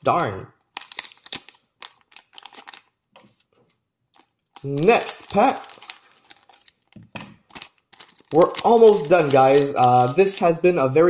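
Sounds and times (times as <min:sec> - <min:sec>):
foil wrapper crinkling: 0:00.6 - 0:11.0.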